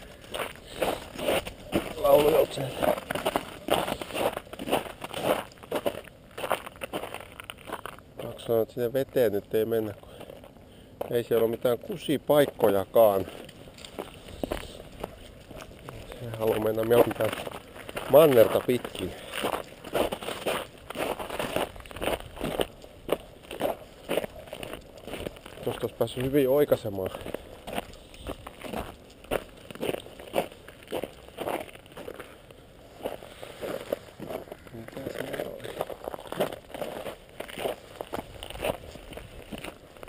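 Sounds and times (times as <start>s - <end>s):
footsteps crunching in snow: 0.0s - 8.6s, 12.3s - 40.0s.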